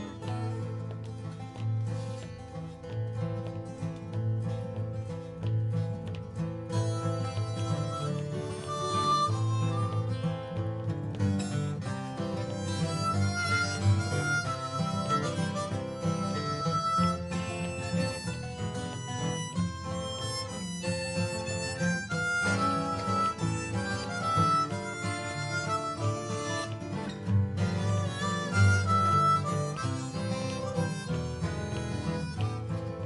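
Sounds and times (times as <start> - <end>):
harmonica melody with bending notes: 0.0 - 2.7, 6.5 - 33.0
acoustic guitars strumming chords: 0.0 - 33.0.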